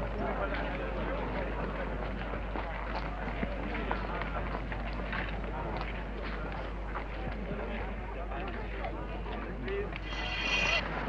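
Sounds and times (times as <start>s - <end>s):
chatter of many voices: 0.0s - 11.0s.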